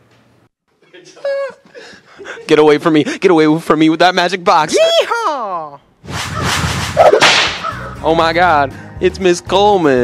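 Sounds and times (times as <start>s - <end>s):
swishing whoosh: 6.0s - 7.6s
whip crack: 6.0s - 7.8s.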